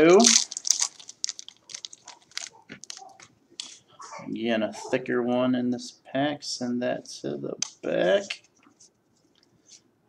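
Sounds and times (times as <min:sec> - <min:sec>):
wrapper crinkling: 0:00.0 - 0:03.8.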